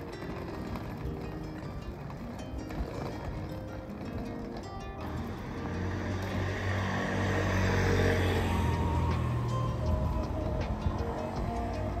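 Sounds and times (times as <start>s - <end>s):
background music: 0.0s - 12.0s
vehicle engine hum and road noise: 0.0s - 12.0s.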